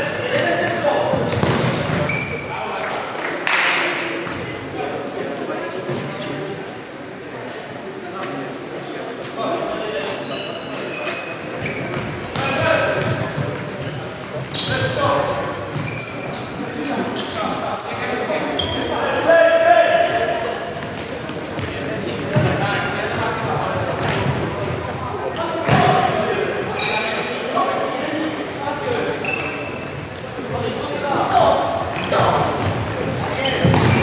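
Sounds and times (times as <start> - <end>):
shoes squeaking: 0.0 - 2.8, 10.0 - 34.0
ball kicks and bounces on wooden floor: 33.6 - 34.0.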